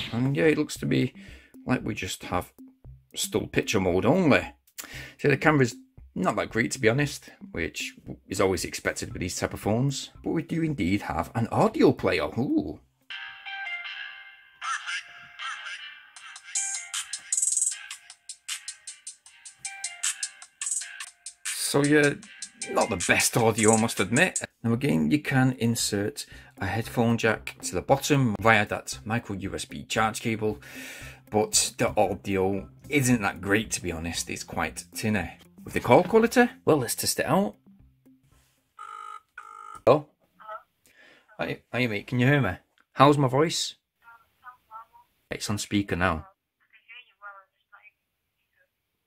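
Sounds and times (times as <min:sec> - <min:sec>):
tinny music from phone speaker: 0:12.5 - 0:24.5, 0:32.6 - 0:40.6
telephone ringback tone: 0:38.8 - 0:39.9.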